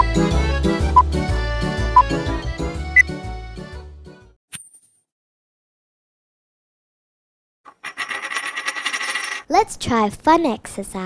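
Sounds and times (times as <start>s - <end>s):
coin spinning on hard surface: 7.7s - 9.5s.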